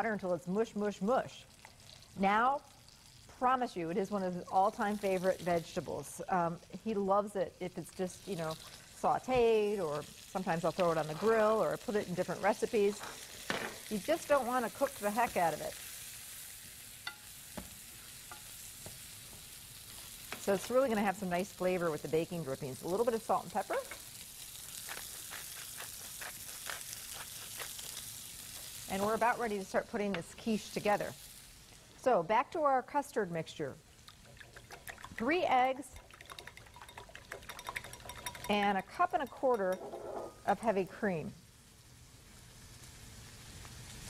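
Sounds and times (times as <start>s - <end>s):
zucchini sizzling in a frying pan: 0.0s - 44.0s
pepper mill grinding: 19.9s - 31.0s, 34.1s - 40.3s.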